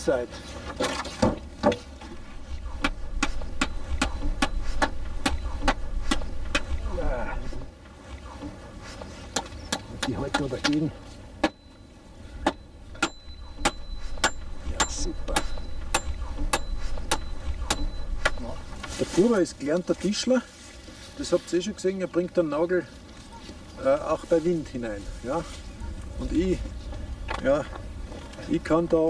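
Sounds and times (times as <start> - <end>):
thin metallic ring: 12.6 - 18.8.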